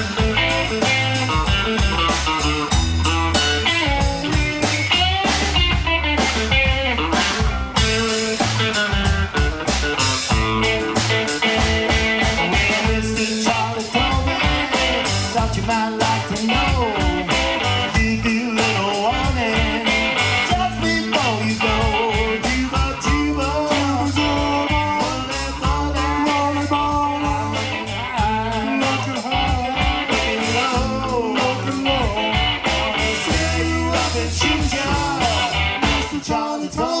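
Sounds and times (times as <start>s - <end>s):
bass guitar: 0.0s - 37.0s
electric guitar lead: 0.0s - 37.0s
steady drum beat: 0.0s - 37.0s.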